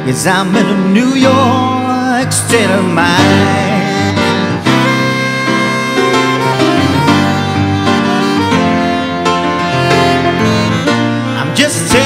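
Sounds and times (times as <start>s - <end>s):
grand piano accompaniment: 0.0s - 12.0s
saxophone playing: 3.2s - 11.8s.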